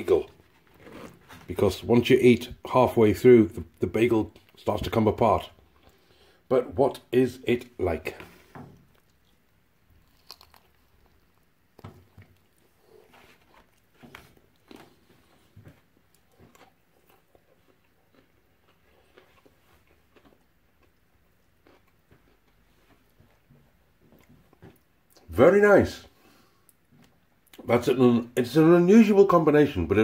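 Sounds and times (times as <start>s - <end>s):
faint chewing: 5.6s - 6.4s, 8.2s - 25.3s.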